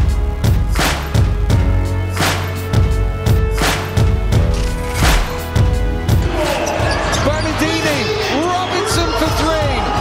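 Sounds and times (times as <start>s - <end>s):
sneakers squeaking on floor: 6.4s - 8.3s.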